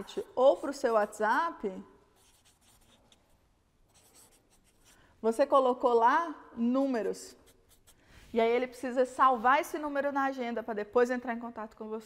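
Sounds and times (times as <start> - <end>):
marker writing on paper: 0.1 - 1.4, 2.2 - 5.0, 6.8 - 8.0.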